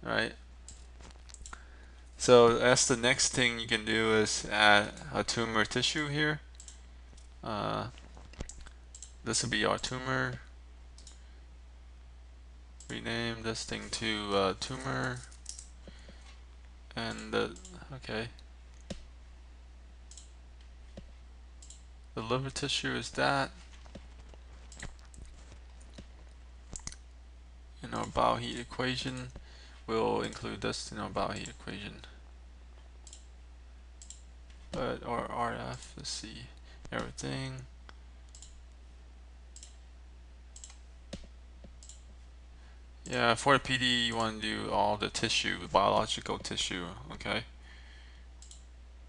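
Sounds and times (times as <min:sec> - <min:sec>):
low electrical hum: 0:00.0 - 0:49.0
computer mouse click: 0:00.7 - 0:01.6, 0:06.6 - 0:07.3, 0:08.4 - 0:09.2, 0:11.0 - 0:11.2, 0:20.1 - 0:20.3, 0:21.6 - 0:21.9, 0:26.7 - 0:27.0, 0:33.0 - 0:33.3, 0:34.0 - 0:34.2, 0:38.3 - 0:38.6, 0:39.6 - 0:39.8, 0:40.6 - 0:42.1, 0:48.4 - 0:48.7.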